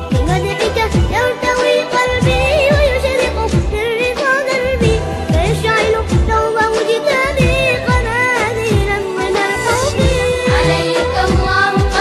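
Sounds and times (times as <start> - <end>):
steady bass: 0.0 - 1.4, 2.1 - 3.9, 4.7 - 6.5, 9.7 - 12.0
voices singing together: 6.7 - 12.0.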